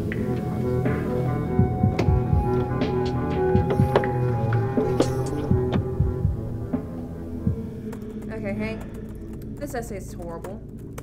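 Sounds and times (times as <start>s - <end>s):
dark drone score: 0.0s - 11.0s
low throbbing thumps: 0.0s - 11.0s.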